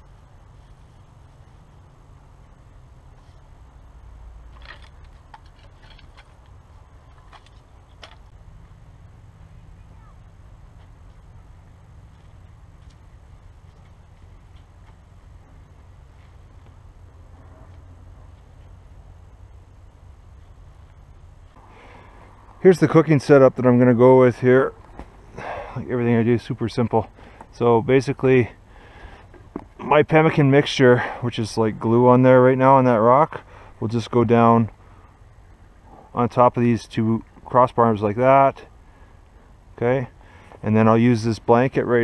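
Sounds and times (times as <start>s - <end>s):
low rumble: 8.2s - 22.8s.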